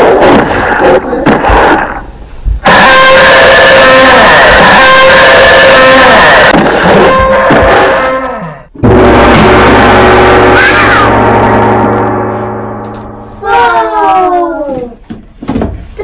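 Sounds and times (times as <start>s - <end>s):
ringing gong-like tone: 8.8s - 14.6s
ringing hit with deep hum: 8.8s - 14.6s.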